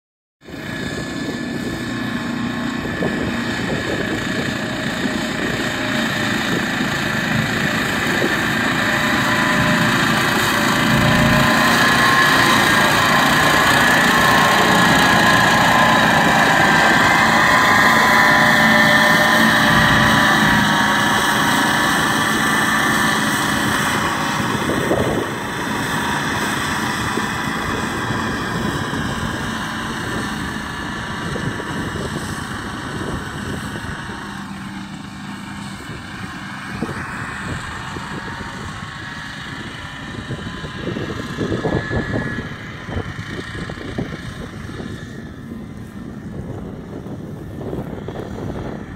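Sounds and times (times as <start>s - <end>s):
flail mower whirring: 0.4s - 48.9s
quad bike engine: 0.4s - 48.9s.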